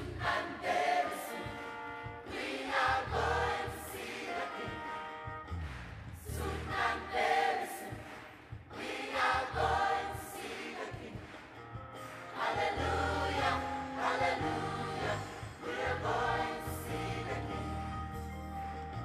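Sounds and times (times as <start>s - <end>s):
children's choir singing gospel: 0.0s - 18.0s.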